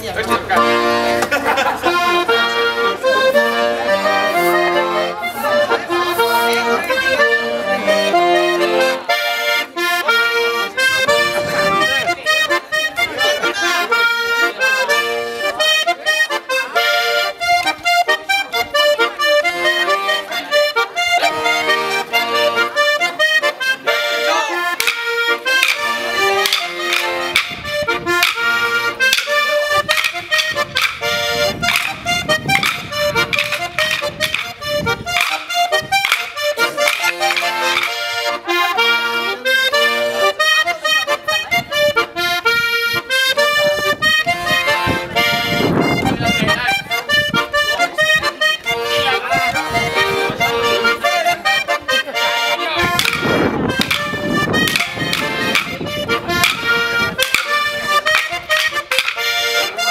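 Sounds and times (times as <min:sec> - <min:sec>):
button accordion dance tune: 0:00.0 - 0:59.9
sharp clacking strokes: 0:24.6 - 0:38.6, 0:52.8 - 0:59.9.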